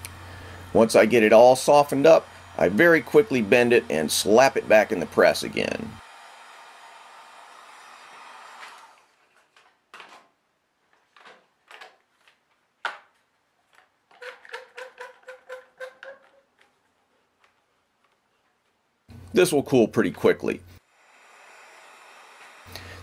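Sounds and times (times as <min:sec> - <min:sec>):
heat gun blowing: 0:00.0 - 0:09.1, 0:20.6 - 0:23.0.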